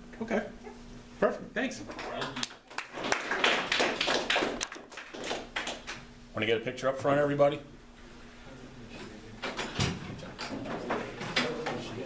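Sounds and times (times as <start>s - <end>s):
small group clapping: 1.9s - 6.1s.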